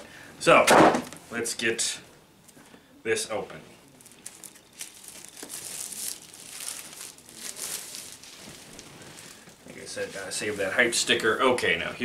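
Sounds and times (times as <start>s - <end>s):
plastic shrink-wrap crinkling and tearing: 4.0s - 9.6s.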